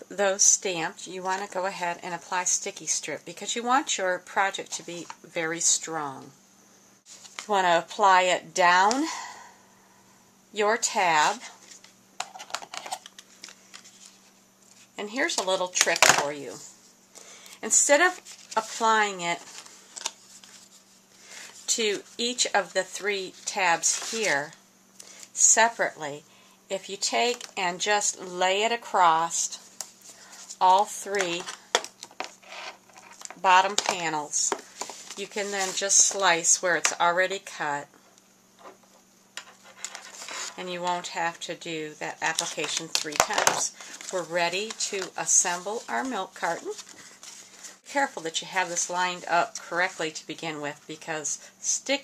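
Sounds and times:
tape clicking and crackling on card: 11.6s - 16.3s, 19.4s - 20.7s, 30.8s - 36.2s, 42.3s - 45.2s
soft rustle of cardstock: 12.8s - 15.0s, 18.0s - 24.6s, 34.6s - 36.2s, 43.7s - 47.8s.

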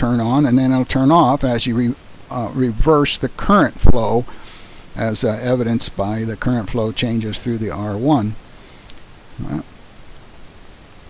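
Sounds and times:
faint recording hiss: 0.0s - 11.0s.

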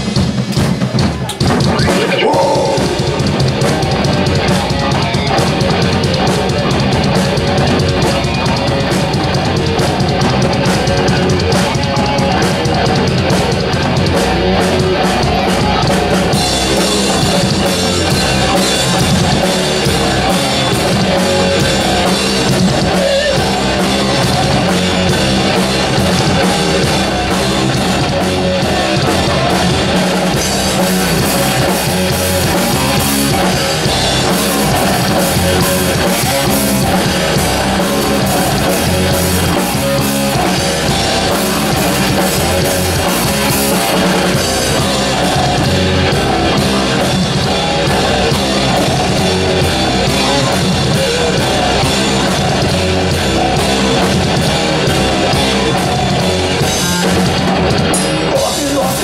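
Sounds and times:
bass guitar: 0.0s - 59.0s
electric guitars: 0.0s - 59.0s
pounding drum kit: 0.0s - 59.0s.

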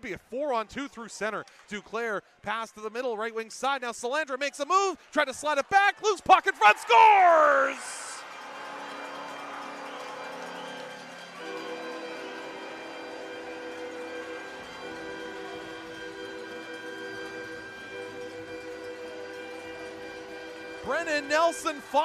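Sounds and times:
arena goal horn: 8.6s - 22.0s.

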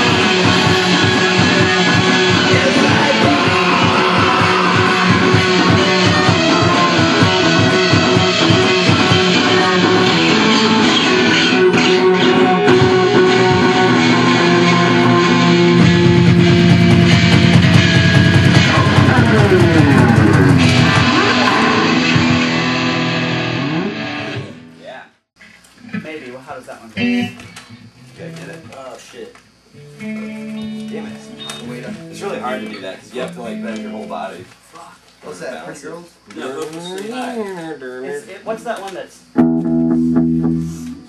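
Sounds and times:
fast driving drum beat: 0.0s - 10.8s, 15.0s - 22.6s
electric guitar: 0.0s - 24.8s, 27.0s - 28.8s, 29.7s - 34.1s, 39.4s - 41.0s
rock band playing: 0.0s - 24.8s, 27.0s - 27.4s, 29.8s - 34.1s, 39.4s - 41.0s.

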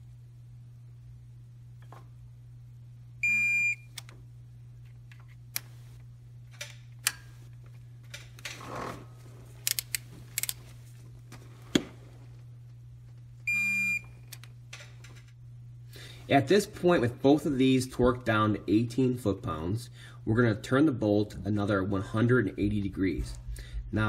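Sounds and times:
metallic clicks of wrench and socket: 9.6s - 10.6s.

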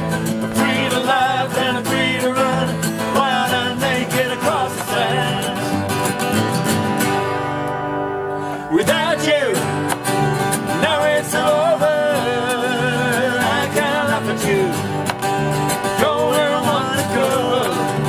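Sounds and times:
acoustic guitars playing: 0.0s - 18.0s
person singing: 0.4s - 6.2s, 8.5s - 9.9s, 10.7s - 15.0s, 15.9s - 18.0s.

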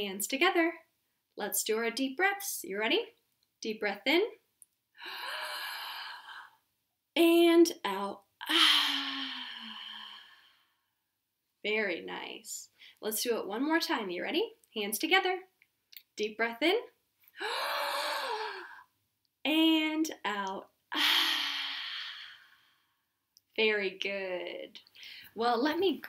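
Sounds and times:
woman breathing in deeply: 5.0s - 6.6s, 8.5s - 10.8s, 17.4s - 18.9s, 21.0s - 23.0s.

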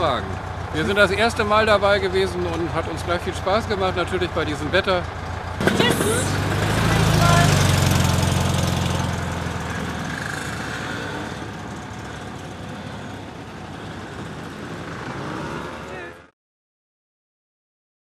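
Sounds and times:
car engine running: 0.0s - 16.1s
outdoor background noise: 0.0s - 16.3s.

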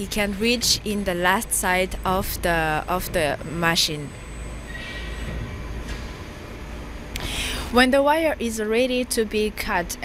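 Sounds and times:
machine low mechanical rumble: 0.0s - 10.0s.

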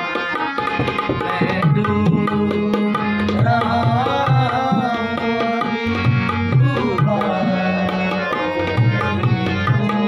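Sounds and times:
harmonium drone: 0.0s - 10.0s
tabla strokes: 0.0s - 10.0s
man singing: 0.8s - 10.0s.

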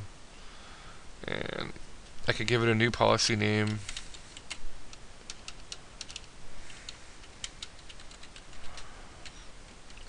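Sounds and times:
computer keyboard typing: 5.3s - 10.0s.

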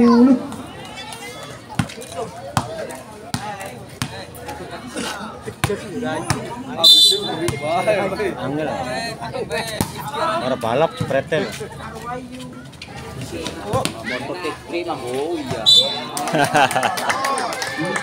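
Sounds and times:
voices of players and spectators: 0.0s - 18.0s
volleyball bouncing on court: 2.6s - 4.2s, 5.6s - 6.6s
referee's whistle blast: 6.8s - 7.5s, 15.6s - 16.1s.

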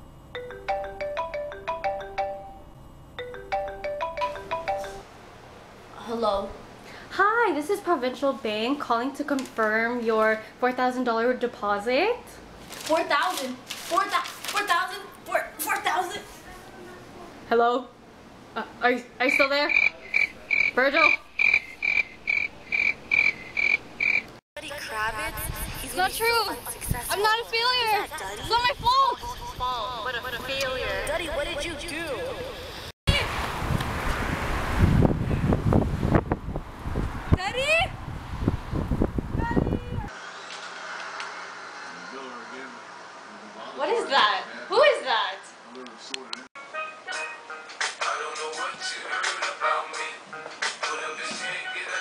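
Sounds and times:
phone ringtone melody: 0.3s - 5.0s.

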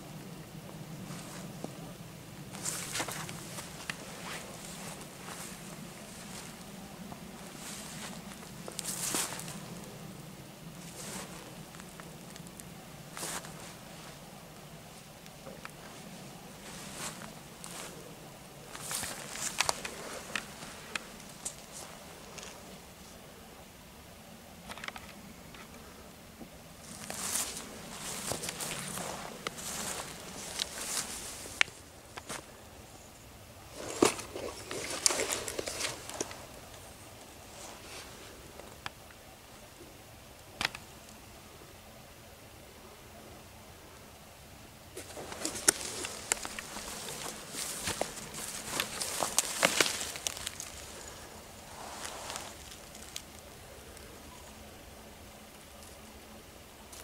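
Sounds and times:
leaves rustling: 0.0s - 41.7s, 44.9s - 57.0s
low steady hum: 0.0s - 57.0s
footsteps in undergrowth: 2.5s - 10.0s, 10.8s - 14.2s, 15.4s - 22.7s, 26.8s - 32.6s, 33.7s - 38.3s, 45.0s - 53.5s.

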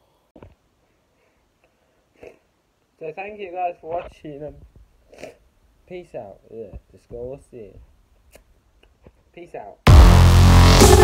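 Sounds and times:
person breathing: 0.0s - 2.5s.

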